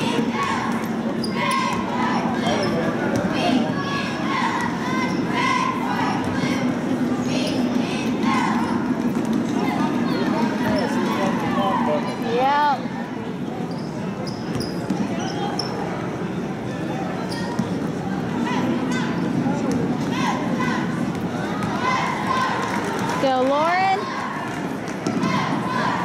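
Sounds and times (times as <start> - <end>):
sneakers squeaking: 0.0 - 6.7, 7.3 - 11.5, 13.4 - 16.2, 17.1 - 22.0
crowd murmur: 0.0 - 26.0.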